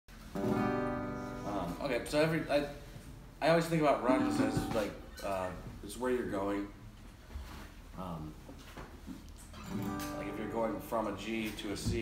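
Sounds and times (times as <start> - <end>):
acoustic guitar chord strummed: 0.3 - 1.5, 4.0 - 5.0.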